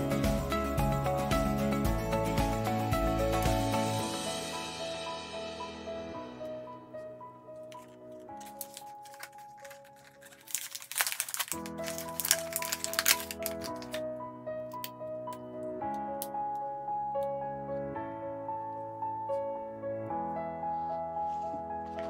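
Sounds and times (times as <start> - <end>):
soft piano-like music: 0.0 - 22.0
plastic blister pack crinkling: 7.7 - 14.0.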